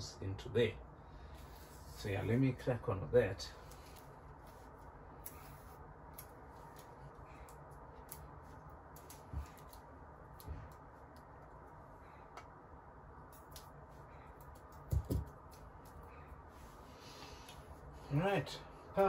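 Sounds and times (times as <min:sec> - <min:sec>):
small handling ticks and clicks: 0:13.3 - 0:16.1.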